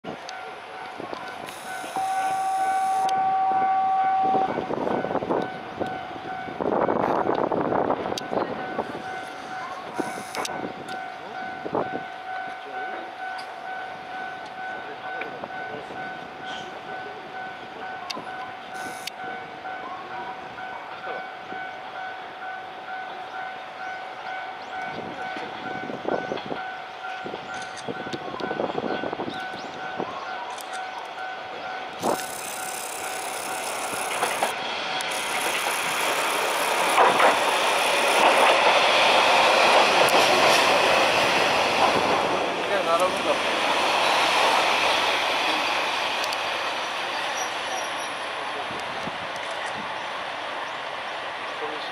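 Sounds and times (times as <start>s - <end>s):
diesel railcar engine: 0.0s - 51.9s
train wheels on rails: 0.0s - 51.9s
electronic warning bell ringing: 1.5s - 3.1s, 30.8s - 34.2s.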